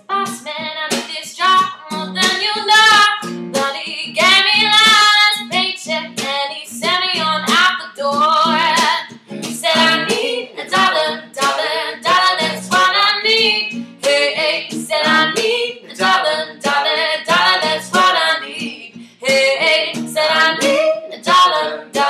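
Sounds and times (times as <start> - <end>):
plucked acoustic guitar: 0.0 - 22.0
woman singing: 0.0 - 22.0.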